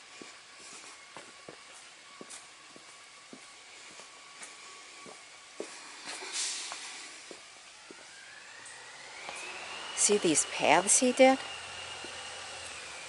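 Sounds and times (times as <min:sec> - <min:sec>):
thin rising whine: 0:00.0 - 0:13.0
footsteps on cobblestones: 0:00.2 - 0:08.2.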